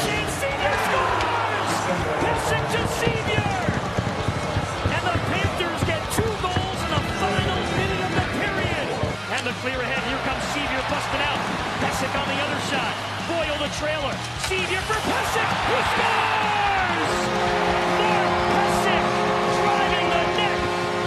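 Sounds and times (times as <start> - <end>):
music: 0.0 - 21.0
hockey sticks and puck clacking: 2.3 - 9.7, 13.7 - 15.5.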